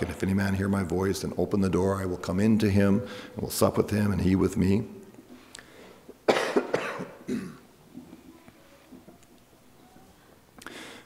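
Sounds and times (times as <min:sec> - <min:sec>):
man coughing: 0:06.3 - 0:07.6.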